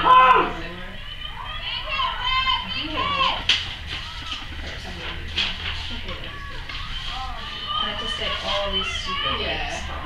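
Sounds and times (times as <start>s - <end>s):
young female voices shouting: 0.0s - 3.5s, 6.2s - 10.0s.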